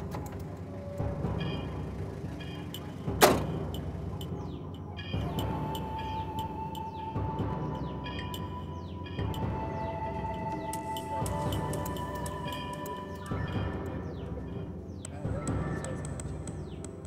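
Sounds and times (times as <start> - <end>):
film background music: 0.0 - 17.0
car door slamming: 3.1 - 3.8.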